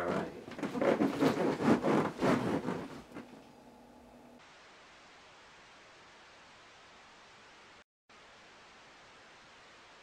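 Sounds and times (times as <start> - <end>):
bedding and clothes rustling: 0.0 - 3.5
faint hiss: 4.4 - 10.0.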